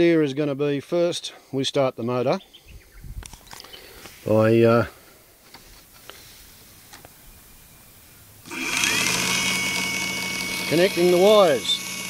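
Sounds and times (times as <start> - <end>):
electric motor humming and whining: 8.4 - 12.0.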